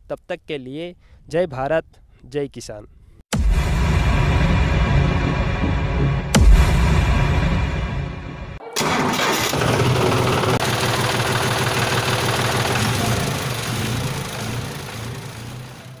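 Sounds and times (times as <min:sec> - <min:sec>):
outro music: 0:03.3 - 0:10.6
engine cranking and idling: 0:08.6 - 0:16.0.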